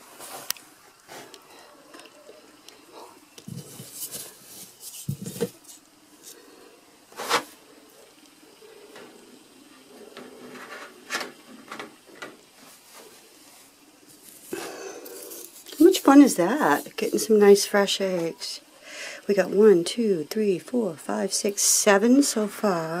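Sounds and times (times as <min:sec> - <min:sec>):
hands rustling in wood shavings: 0:12.7 - 0:17.6.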